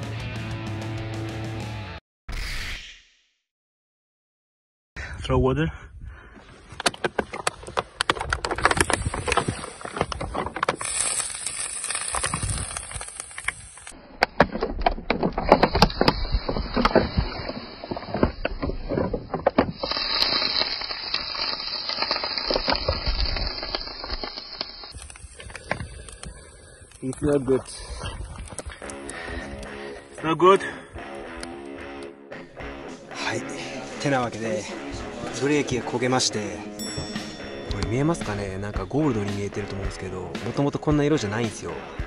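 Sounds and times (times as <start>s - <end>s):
water sizzling on hot metal: 10.8s - 14.0s, 19.7s - 25.5s.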